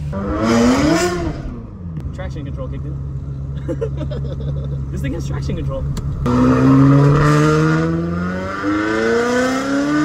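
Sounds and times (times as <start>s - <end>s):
car engine revving hard: 0.0s - 1.7s, 6.2s - 10.0s.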